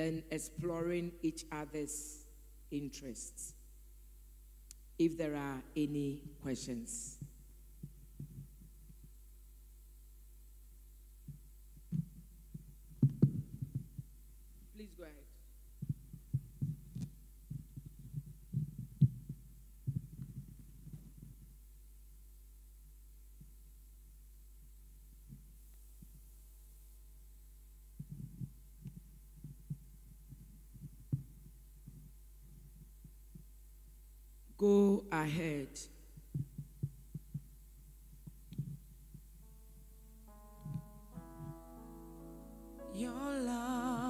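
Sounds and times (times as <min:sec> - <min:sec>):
faint steady low hum: 0:00.0 - 0:44.0
soft low thumps: 0:07.2 - 0:09.4, 0:11.2 - 0:14.7, 0:15.6 - 0:21.8, 0:27.8 - 0:34.0, 0:36.1 - 0:44.0
low muffled thumps and knocks: 0:07.8 - 0:09.2, 0:11.3 - 0:14.1, 0:15.8 - 0:21.5
held keyboard chord: 0:39.4 - 0:44.0.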